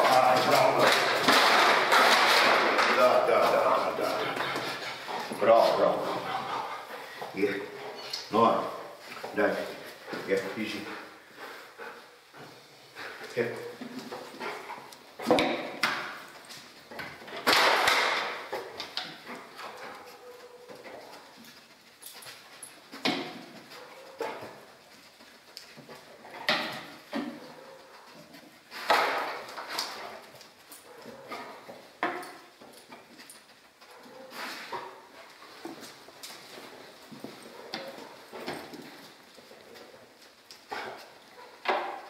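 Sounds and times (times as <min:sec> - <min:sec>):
dog paws scuffing on boxes: 0:00.0 - 0:11.1, 0:18.4 - 0:42.0
dog sniffing: 0:03.9 - 0:08.2.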